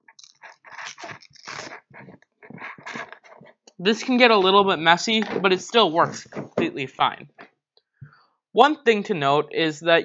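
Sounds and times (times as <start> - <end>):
hook-and-loop straps ripping: 0.1 - 3.6.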